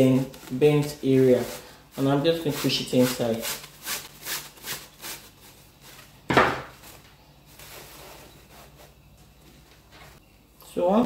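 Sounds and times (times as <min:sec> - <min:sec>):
fabric rustling: 0:00.0 - 0:10.2.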